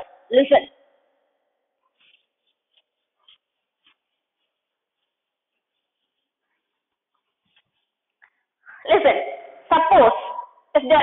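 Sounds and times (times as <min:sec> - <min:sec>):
duster wiping chalkboard: 0:01.9 - 0:08.0.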